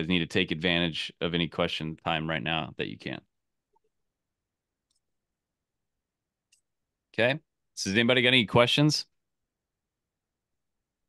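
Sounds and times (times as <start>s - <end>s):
man speaking: 0.0s - 3.3s, 7.2s - 9.1s.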